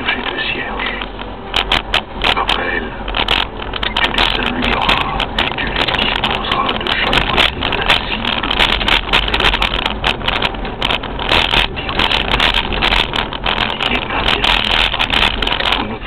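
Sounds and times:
vehicle driving heard from inside: 0.0s - 16.0s.

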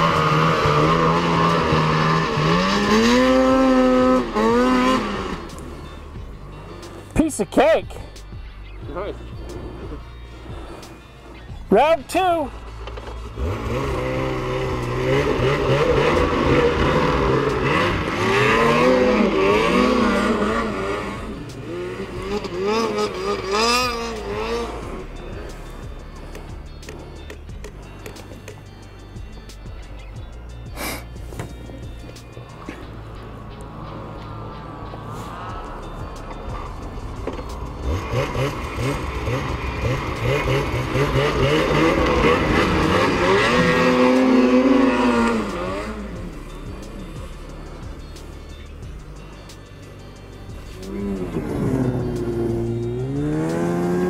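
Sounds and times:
snowmobile engines revving: 0.0s - 8.1s, 8.9s - 27.4s, 32.5s - 54.0s.

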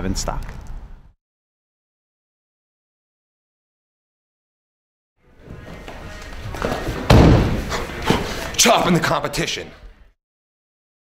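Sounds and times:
music: 5.2s - 10.1s
heavy thud: 6.6s - 8.3s.

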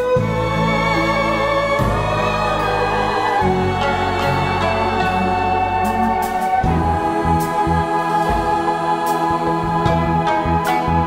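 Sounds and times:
orchestral accompaniment: 0.0s - 11.0s
large choir singing: 0.1s - 11.0s.

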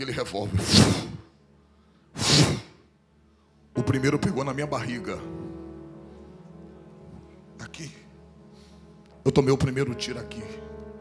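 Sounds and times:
man blowing air into microphone: 0.6s - 1.3s, 2.2s - 2.9s.

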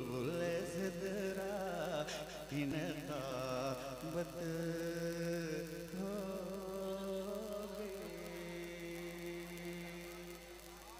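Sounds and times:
man singing over public address: 0.0s - 10.9s.

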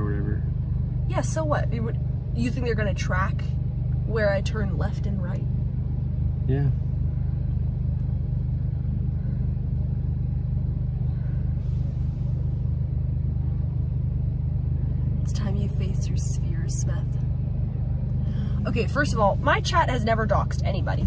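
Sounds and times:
car engine drone: 0.0s - 21.0s.

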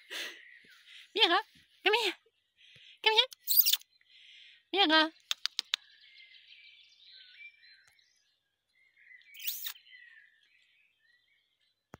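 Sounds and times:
birds chirping: 0.0s - 11.9s
sharp clicks: 5.2s - 5.8s.

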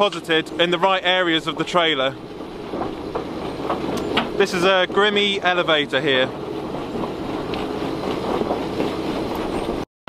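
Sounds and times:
elevator machinery running: 0.0s - 9.8s.

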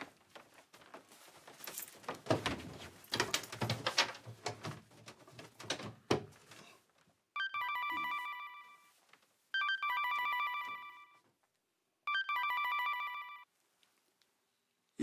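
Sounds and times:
phone ringtone melody: 7.4s - 8.9s, 9.6s - 11.2s, 12.1s - 13.5s.

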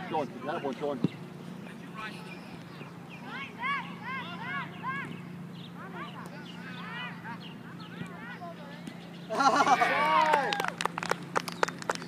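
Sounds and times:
spectators shouting and cheering: 9.5s - 10.8s
hand clapping: 10.1s - 12.0s.

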